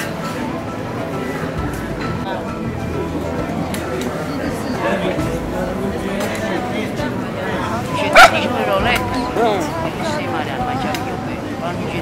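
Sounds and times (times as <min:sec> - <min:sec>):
street chatter: 0:00.0 - 0:12.0.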